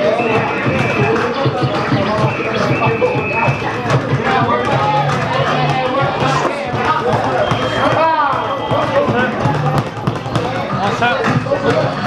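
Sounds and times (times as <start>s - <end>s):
background music: 0.0s - 12.0s
indistinct voices: 0.0s - 12.0s.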